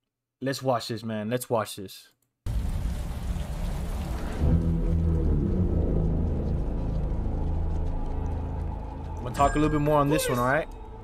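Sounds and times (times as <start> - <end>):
rain-like hiss: 2.5 - 4.8
low ominous music: 3.8 - 11.0.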